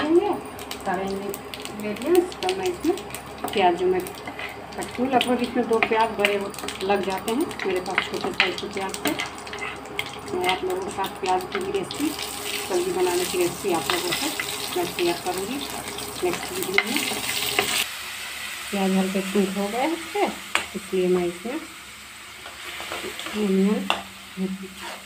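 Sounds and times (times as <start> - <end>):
onions sizzling in oil: 0.0 - 25.0
metal spatula scraping pan: 4.2 - 4.6, 24.7 - 25.0.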